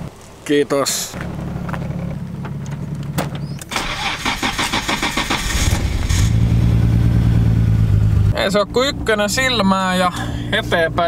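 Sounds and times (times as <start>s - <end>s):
steady low hum: 0.0s - 3.7s, 5.6s - 11.0s
car engine idling: 0.0s - 11.0s
car starter cranking: 2.6s - 7.0s.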